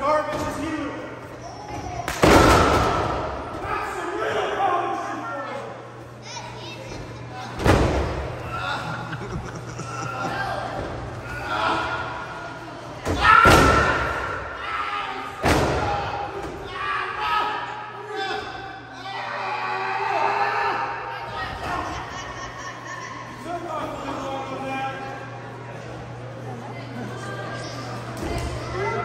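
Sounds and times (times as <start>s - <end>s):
loud impact thuds echoing: 2.0s - 3.7s, 13.0s - 14.5s, 15.4s - 16.6s
person shouting in echoing hall: 9.8s - 12.5s, 13.1s - 22.3s.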